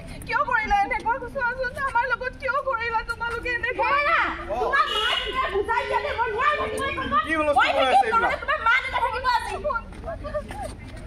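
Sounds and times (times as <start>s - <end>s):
women's raised voices: 0.3s - 10.8s.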